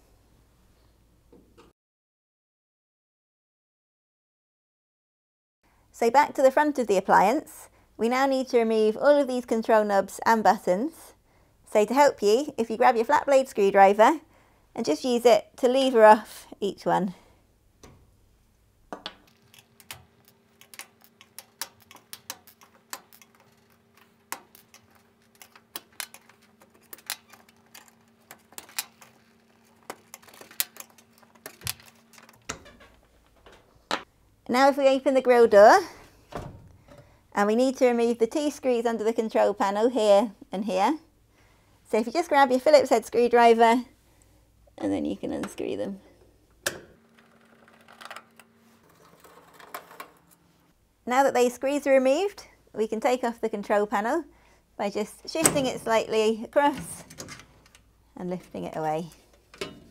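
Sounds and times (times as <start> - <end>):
screwdriver clicking and scraping: 19.2 - 33.4.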